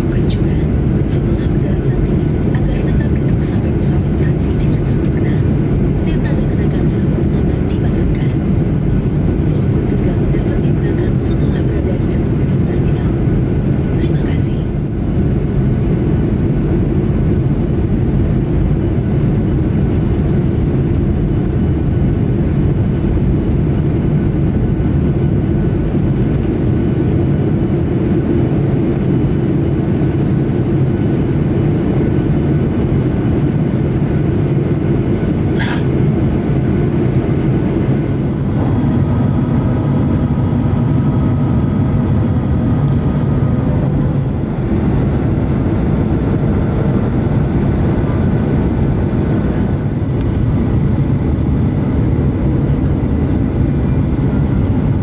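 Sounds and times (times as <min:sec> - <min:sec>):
airplane cabin rumble: 0:00.0 - 0:55.0.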